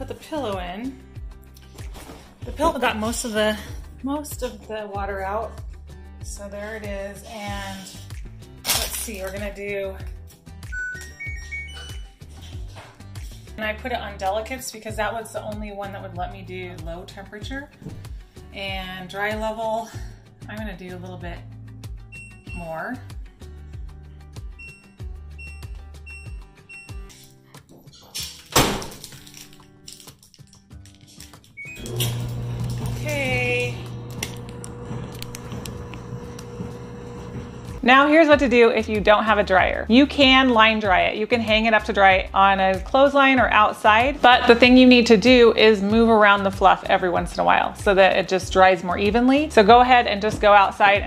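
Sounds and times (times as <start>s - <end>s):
background music with steady beat: 0.0s - 28.9s, 35.5s - 51.0s
dryer drum and motor humming: 31.7s - 37.8s.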